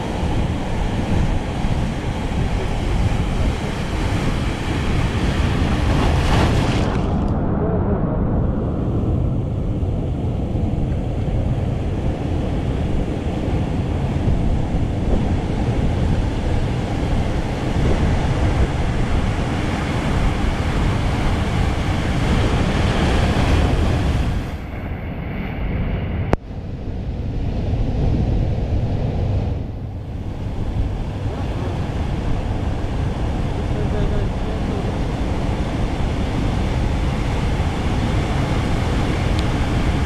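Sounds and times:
surf rushing: 0.0 - 40.0
wind buffeting microphone: 0.0 - 40.0.

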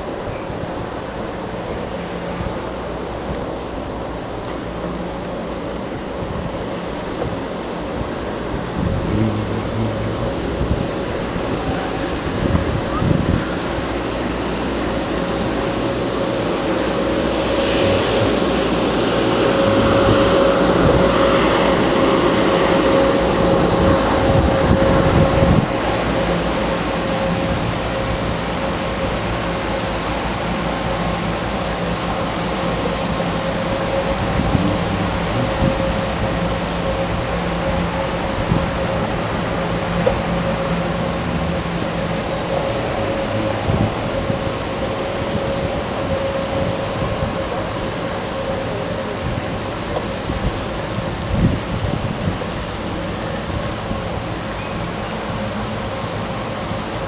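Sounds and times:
bicycle tyres rolling on asphalt: 0.0 - 57.0
steady high hum: 0.0 - 57.0
wind on microphone: 5.9 - 29.1, 32.9 - 55.5.

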